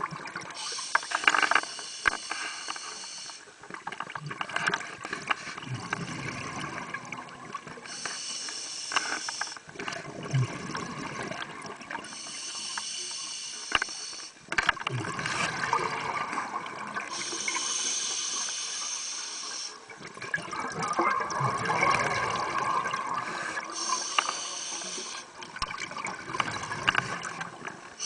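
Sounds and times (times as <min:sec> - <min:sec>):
regulator hissing inhalations: 0:00.6 - 0:03.4, 0:07.9 - 0:09.6, 0:12.1 - 0:14.4, 0:17.1 - 0:19.8, 0:23.2 - 0:25.3
bubbling exhalations underwater: 0:05.6 - 0:07.6, 0:10.0 - 0:12.0, 0:14.8 - 0:17.2, 0:20.1 - 0:23.4.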